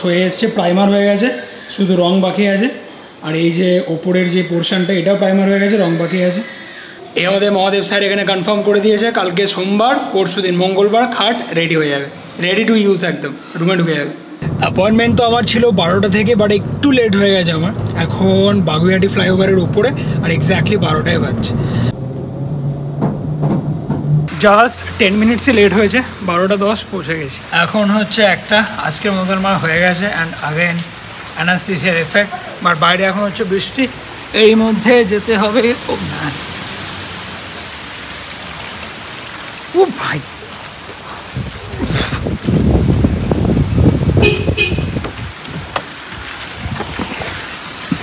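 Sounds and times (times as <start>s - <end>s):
steady rain: 0.0s - 48.0s
low rumble: 14.4s - 24.3s.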